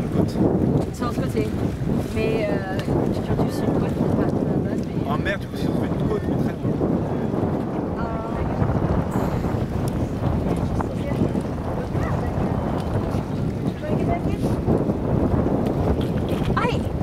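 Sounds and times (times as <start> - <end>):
lake waves washing: 0.0 - 17.0
wind buffeting microphone: 0.0 - 17.0.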